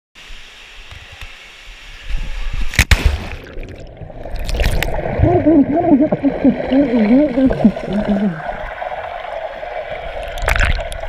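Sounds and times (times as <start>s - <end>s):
water noise: 0.2s - 11.0s.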